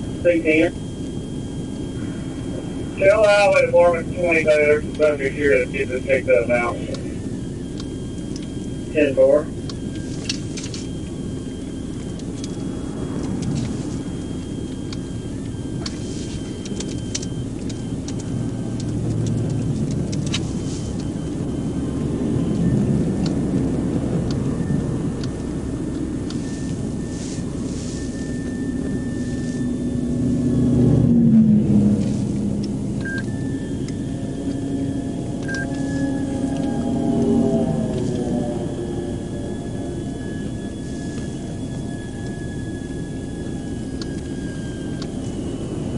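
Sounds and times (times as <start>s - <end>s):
highway traffic passing: 0.0s - 42.0s
steady low rumble: 0.0s - 45.9s
vehicle engine note: 0.0s - 45.9s.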